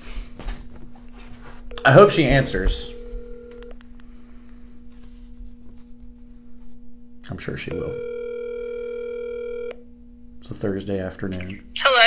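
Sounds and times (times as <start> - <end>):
phone ringing tone: 1.7 - 3.8, 7.7 - 9.8.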